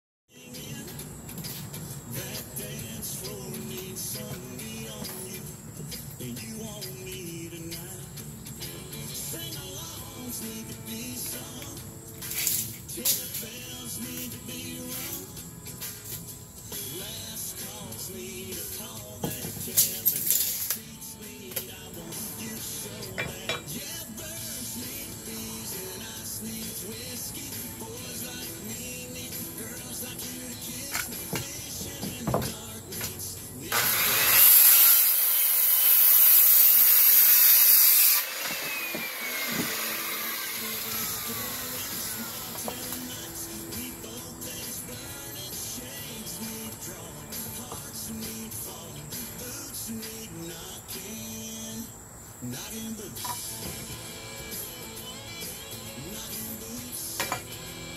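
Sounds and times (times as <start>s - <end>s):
background music: 0.3s - 57.9s
circular saw cutting wood: 33.7s - 43.4s.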